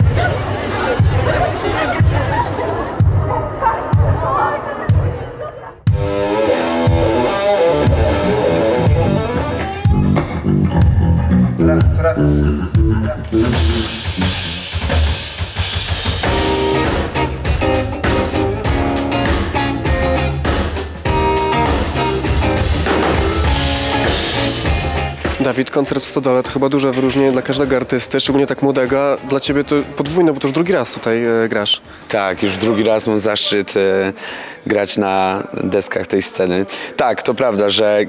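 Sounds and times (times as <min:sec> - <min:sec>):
drums with cymbals: 0:05.9 - 0:11.0, 0:12.8 - 0:25.5
pop-rock band music: 0:05.9 - 0:25.6.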